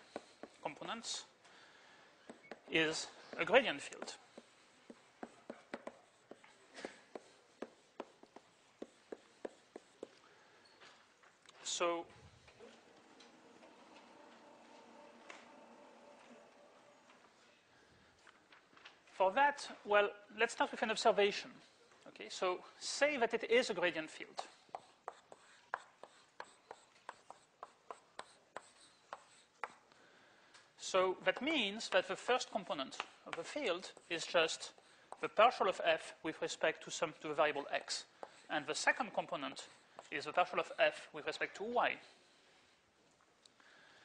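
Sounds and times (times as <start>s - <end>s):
chalk tapping on blackboard: 0.0s - 0.6s, 2.3s - 2.7s, 3.3s - 10.2s, 24.3s - 29.8s, 38.2s - 38.4s
chalk scraping on blackboard: 3.3s - 10.2s, 24.3s - 29.8s.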